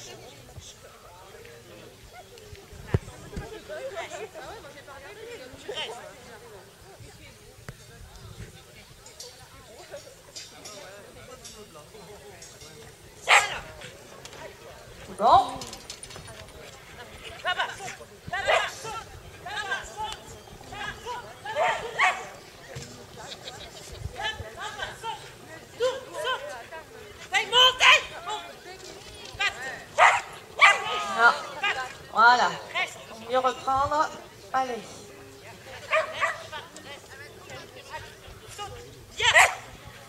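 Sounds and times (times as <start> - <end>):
dog barking: 13.3 - 13.7, 21.6 - 22.3, 30.0 - 30.9, 35.9 - 36.5, 39.3 - 39.6.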